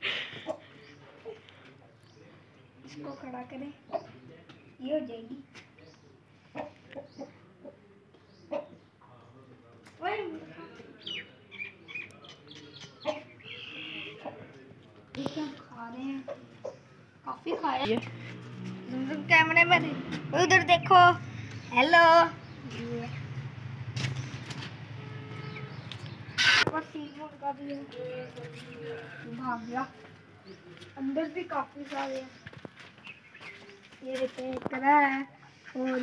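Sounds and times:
birds chirping: 0.0s - 9.6s, 10.2s - 36.0s.

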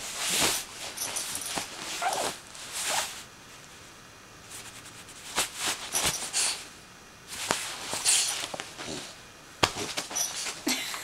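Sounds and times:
rustling bedding: 0.0s - 3.3s, 4.4s - 10.8s
puppy whining: 1.2s - 2.4s.

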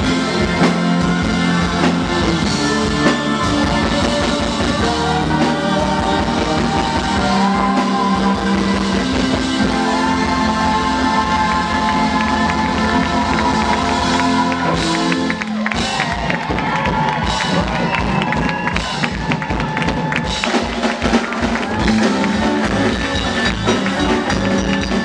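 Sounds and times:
crowd cheering: 0.0s - 25.0s
live rock band: 0.0s - 25.0s
steady drum beat: 0.0s - 25.0s.

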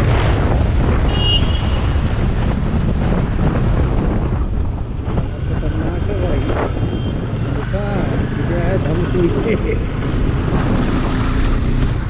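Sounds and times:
motorcycle engine: 0.0s - 12.0s
wind buffeting microphone: 0.0s - 12.0s.

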